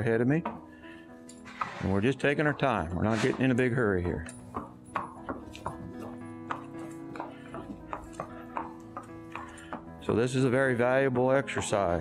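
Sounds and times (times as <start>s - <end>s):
hoofbeats on concrete: 0.0s - 12.0s.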